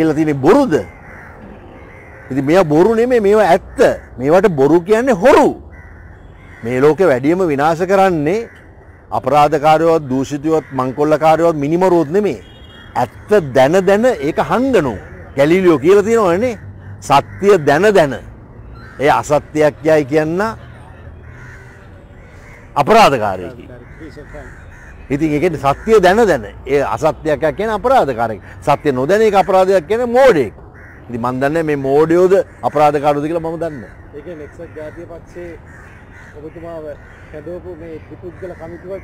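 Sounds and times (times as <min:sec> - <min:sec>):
faint bird calls: 0:00.0 - 0:04.6, 0:05.6 - 0:26.5, 0:28.4 - 0:39.0
man speaking: 0:09.2 - 0:18.3, 0:22.8 - 0:24.5, 0:25.1 - 0:35.6.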